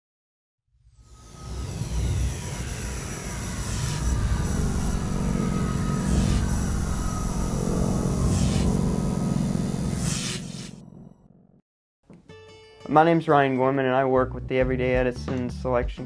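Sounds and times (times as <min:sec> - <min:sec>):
deep rumble: 0:00.8 - 0:10.0
falling sweeping tones: 0:00.8 - 0:10.6
whoosh: 0:00.8 - 0:10.8.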